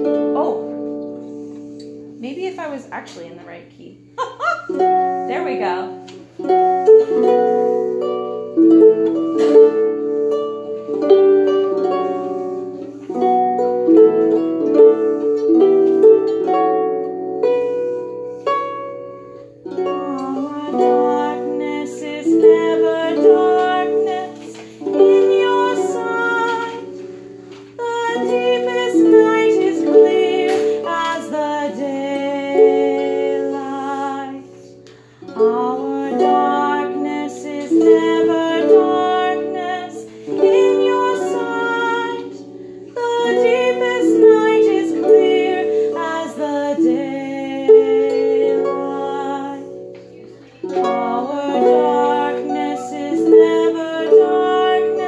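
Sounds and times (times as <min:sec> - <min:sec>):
harp playing a hymn tune: 0:00.0 - 0:03.3, 0:04.0 - 0:55.0.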